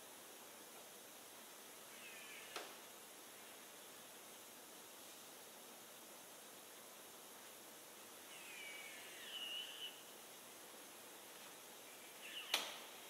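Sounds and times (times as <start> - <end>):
steady low hiss: 0.0 - 13.0.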